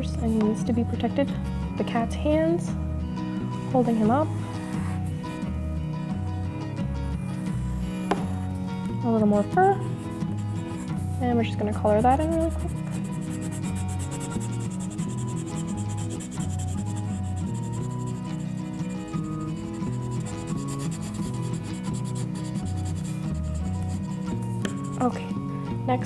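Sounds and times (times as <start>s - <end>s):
light background tune: 0.0s - 26.0s
pencil shading on paper: 4.0s - 5.4s, 9.6s - 25.3s.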